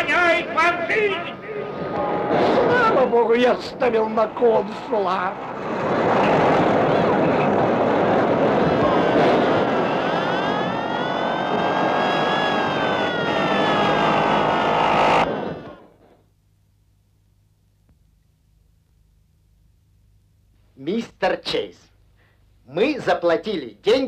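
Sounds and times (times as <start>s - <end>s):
rising and falling tone: 5.4s - 16.0s
roaring cartoon sound effects: 6.7s - 16.0s.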